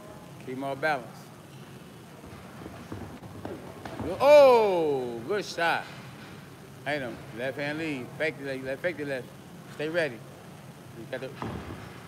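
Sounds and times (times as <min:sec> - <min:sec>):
footwork on ring canvas: 0:01.4 - 0:08.0, 0:11.2 - 0:12.0.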